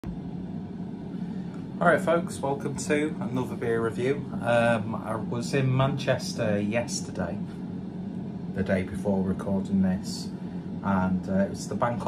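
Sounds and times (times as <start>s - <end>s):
steady low hum: 0.0s - 12.0s
man speaking: 1.8s - 7.5s, 8.6s - 12.0s.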